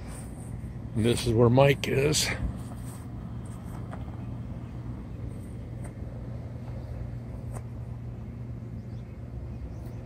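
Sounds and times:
low motor hum: 0.0s - 10.0s.

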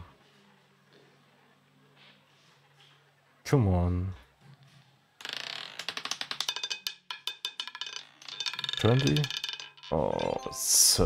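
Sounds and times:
roulette ball clattering: 5.2s - 10.6s.

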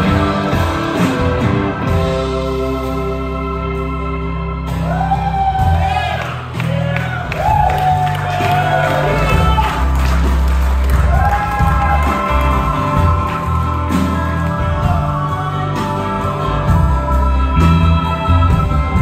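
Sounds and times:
bass and drums: 0.0s - 19.0s.

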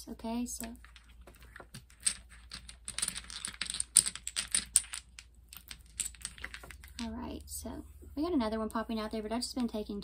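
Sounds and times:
dominoes clicking while shuffled: 0.6s - 7.1s.

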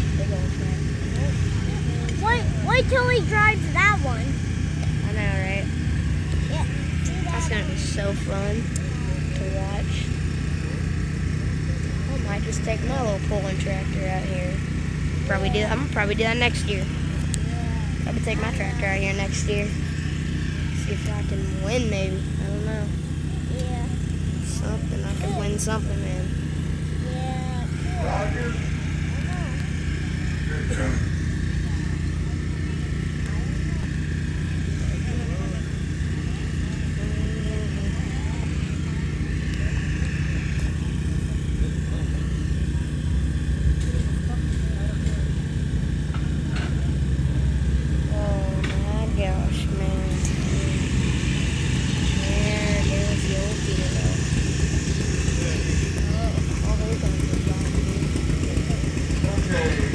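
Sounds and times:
engine running steadily: 0.0s - 59.9s
people's voices: 0.0s - 59.9s.

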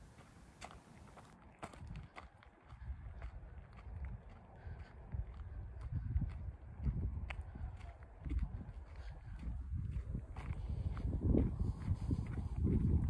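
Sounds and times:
footsteps on dirt path: 0.0s - 13.0s.

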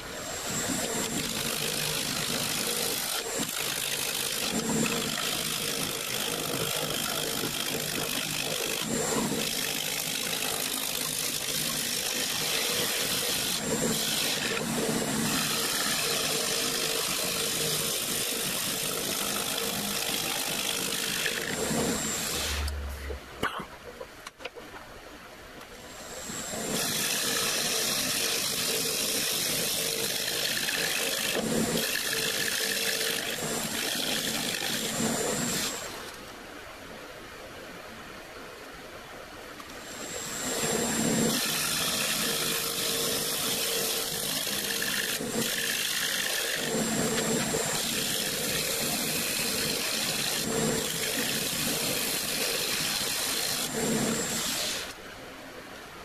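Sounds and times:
lathe motor hum: 0.0s - 23.2s
turning tool cutting wood: 0.0s - 23.2s, 25.9s - 36.2s, 39.8s - 55.0s.

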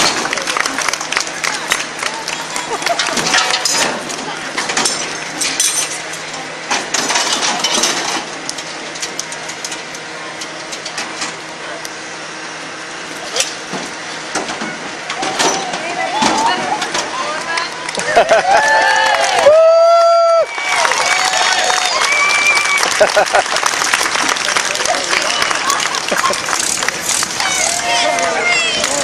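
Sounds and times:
metal parts clinking: 3.0s - 6.3s.

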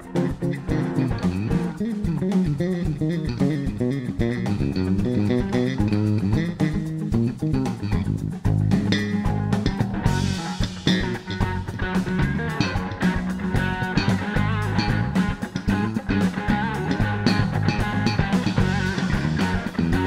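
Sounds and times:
drum kit: 0.0s - 20.0s
electric bass line: 0.0s - 20.0s
electric guitar: 0.0s - 20.0s.

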